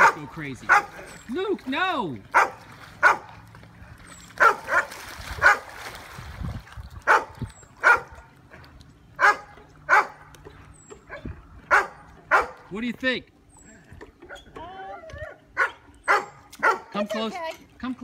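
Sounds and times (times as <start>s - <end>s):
dogs barking: 0.0s - 1.2s, 2.3s - 3.4s, 4.3s - 5.7s, 7.0s - 12.7s, 15.2s - 17.0s.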